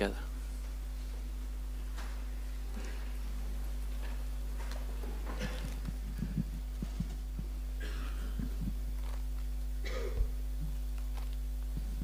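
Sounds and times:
sound system hum: 0.0 - 12.0.

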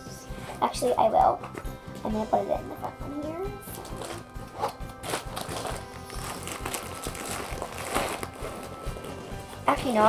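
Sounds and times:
faint music: 0.0 - 10.0
school supplies rustling and clicking: 3.7 - 10.0.

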